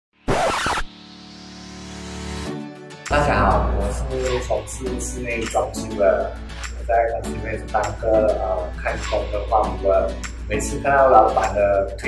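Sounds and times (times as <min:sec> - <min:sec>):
held musical chord: 0:03.1 - 0:06.0.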